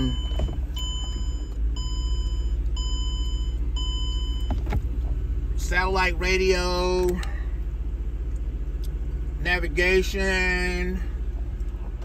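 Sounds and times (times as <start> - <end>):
car warning chime beeping: 0.0 - 4.8
low steady rumble: 0.0 - 12.0.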